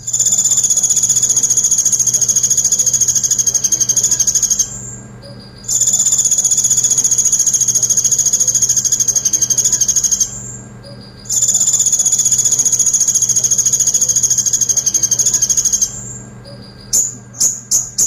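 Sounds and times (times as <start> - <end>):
sunbird high-pitched rattling trill: 0.0 - 18.0.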